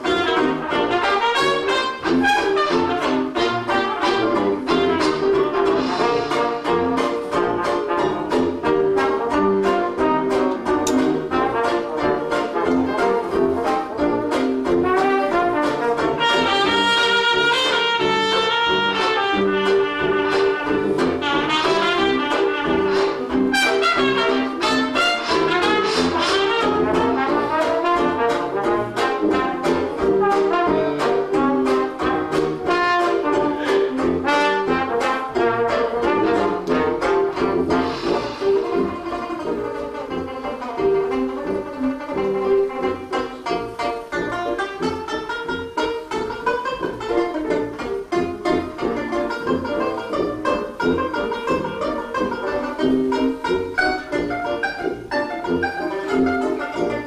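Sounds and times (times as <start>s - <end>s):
strummed banjo: 0.0s - 57.0s
trombone: 0.0s - 57.0s
sousaphone bass: 15.9s - 32.7s.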